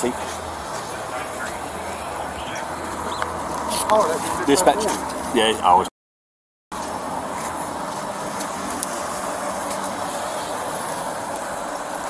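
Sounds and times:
idling vehicle engines rumble: 0:00.0 - 0:05.8, 0:06.8 - 0:12.0
faint voices: 0:00.0 - 0:05.9.

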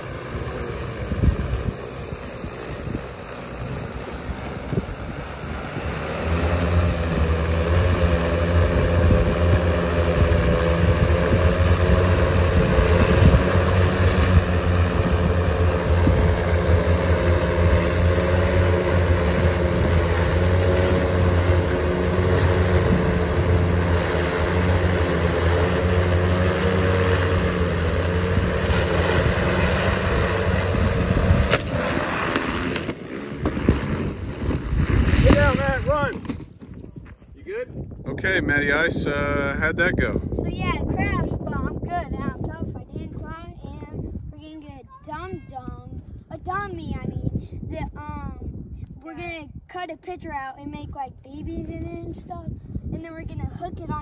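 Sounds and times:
drone motors humming: 0:00.0 - 0:36.6
sharp crack of drone crashing: 0:16.4 - 0:36.5.

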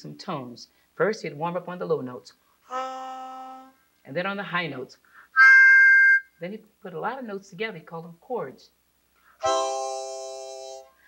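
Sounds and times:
harmonica held chord: 0:09.4 - 0:10.9.

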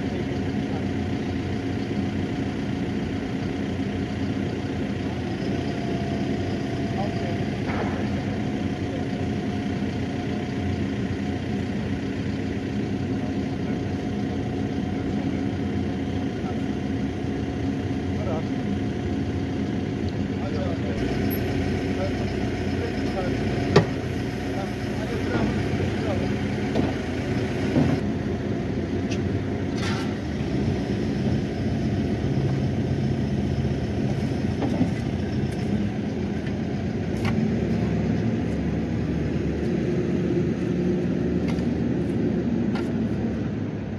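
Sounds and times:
excavator engine idling: 0:00.0 - 0:43.9.

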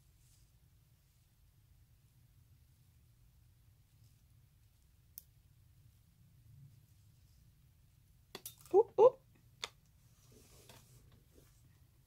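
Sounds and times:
woman yelping: 0:08.7 - 0:09.2.

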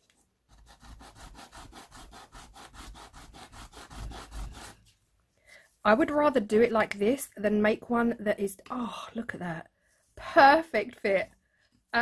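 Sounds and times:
bar rasping on sandpaper: 0:00.5 - 0:04.9.

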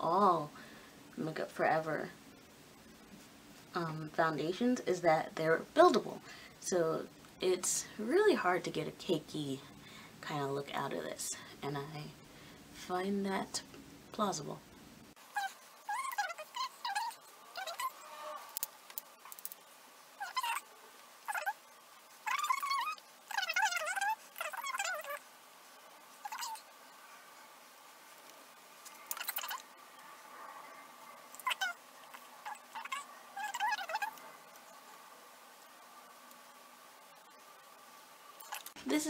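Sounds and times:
animal high-pitched wavering cries: 0:15.3 - 0:18.6, 0:20.2 - 0:20.7, 0:21.3 - 0:21.6, 0:22.2 - 0:25.2, 0:26.2 - 0:26.7, 0:29.1 - 0:29.6, 0:31.4 - 0:31.8, 0:32.4 - 0:34.2.

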